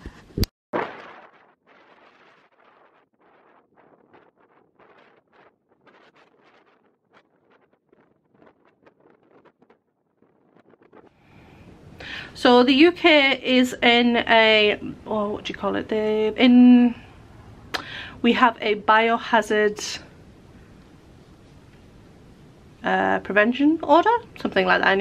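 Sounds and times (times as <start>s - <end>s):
wind gusting across microphone: 1.0s - 25.0s.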